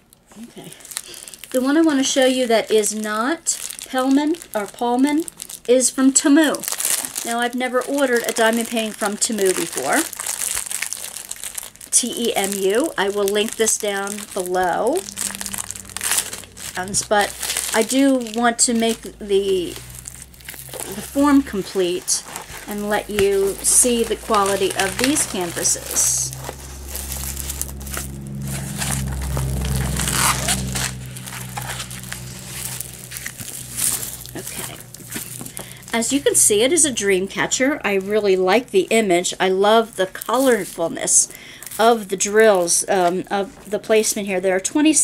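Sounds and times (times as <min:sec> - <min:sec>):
plastic wrap crinkling: 0:00.0 - 0:44.9.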